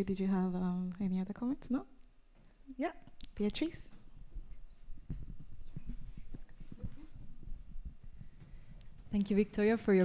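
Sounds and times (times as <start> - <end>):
soft knocks and thumps: 3.9 - 9.2.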